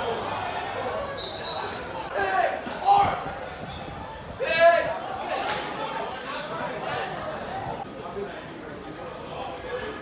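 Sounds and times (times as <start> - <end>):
murmur of voices: 0.0 - 10.0.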